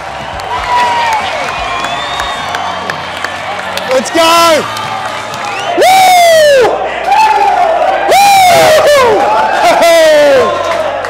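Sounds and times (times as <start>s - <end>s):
men whooping and cheering: 0.0s - 11.0s.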